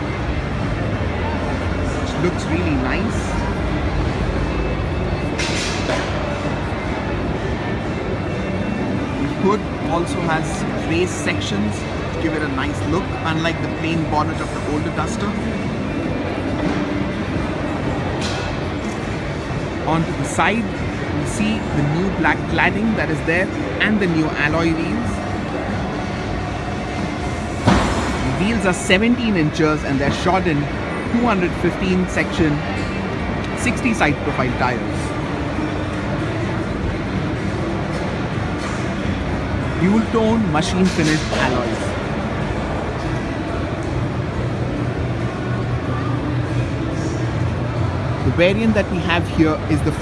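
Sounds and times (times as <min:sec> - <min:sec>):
exhibition hall low rumble: 0:00.0 - 0:50.0.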